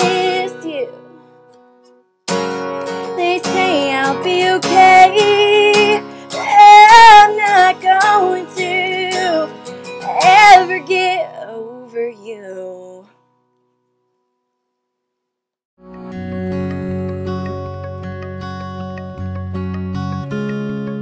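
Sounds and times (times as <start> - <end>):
woman singing country ballad: 0.0 - 1.2, 2.8 - 13.1
acoustic guitar: 0.0 - 14.3, 15.8 - 21.0.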